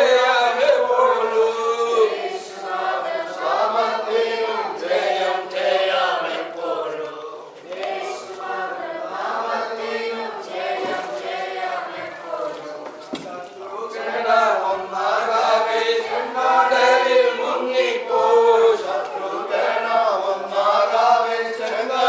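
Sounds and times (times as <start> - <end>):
congregation singing: 0.0 - 22.0.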